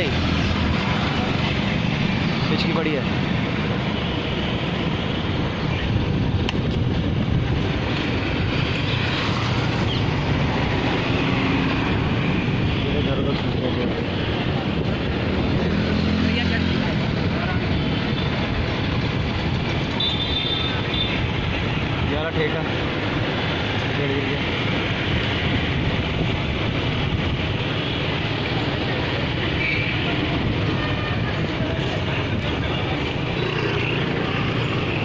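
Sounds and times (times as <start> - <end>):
vehicles passing: 0.0 - 35.0.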